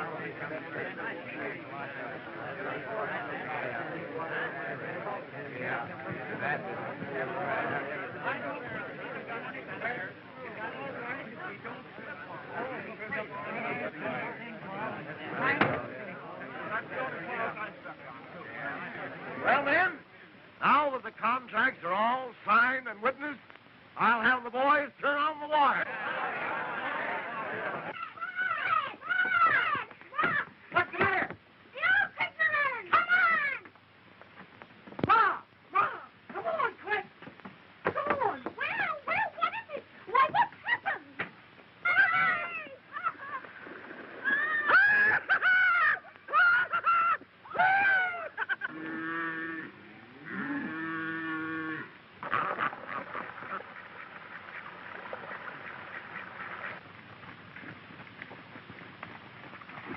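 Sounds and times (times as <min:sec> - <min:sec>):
excited shouts and whoops: 0:26.4 - 0:30.5, 0:31.8 - 0:33.6, 0:38.1 - 0:41.1, 0:41.8 - 0:43.4, 0:44.2 - 0:48.7.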